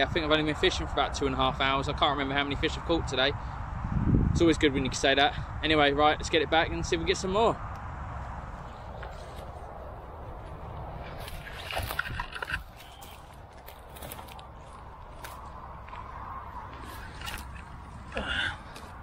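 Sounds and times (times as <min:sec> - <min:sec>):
steady low rumble: 0:00.0 - 0:19.0
reeds and grass rustling: 0:08.4 - 0:19.0.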